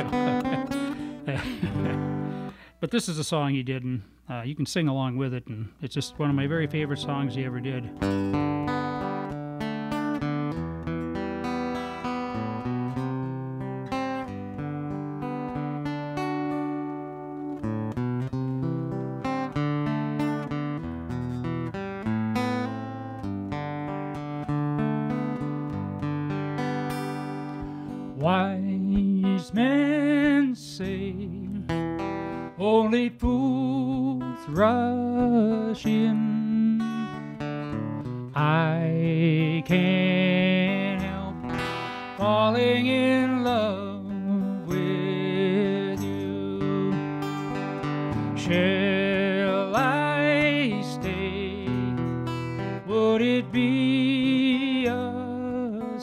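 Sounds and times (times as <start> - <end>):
acoustic guitar chords: 0.0 - 56.0.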